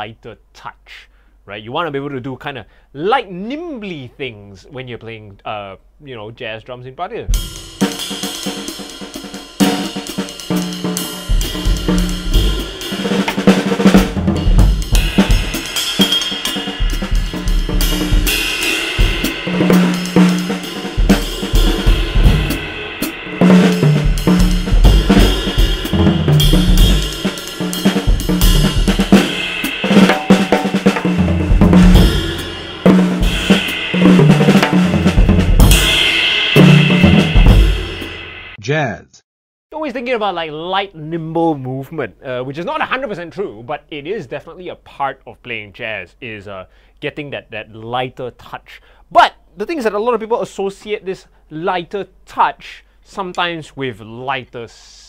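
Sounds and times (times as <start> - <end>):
drum kit playing: 7.2 - 38.6.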